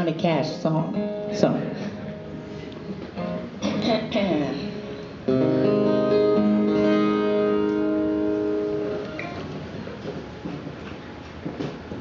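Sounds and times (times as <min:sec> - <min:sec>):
faint stage noise: 0:00.0 - 0:12.0
guitar chord ringing: 0:00.9 - 0:09.6.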